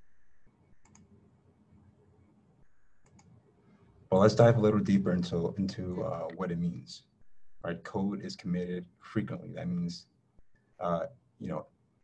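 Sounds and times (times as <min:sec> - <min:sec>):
faint clicks: 0:00.0 - 0:01.9, 0:02.6 - 0:03.9.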